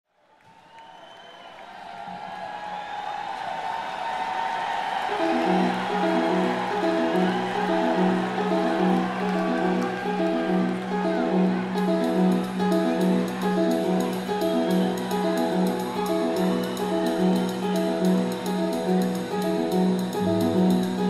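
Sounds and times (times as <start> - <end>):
crowd cheering and whistling: 0.2 - 21.0
rock band playing a riff: 5.2 - 21.0.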